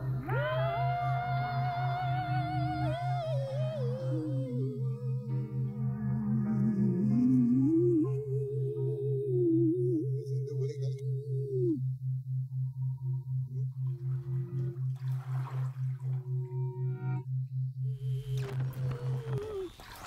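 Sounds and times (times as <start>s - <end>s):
low pulsing electronic tone: 0.0s - 20.0s
wavering higher tone: 0.0s - 20.0s.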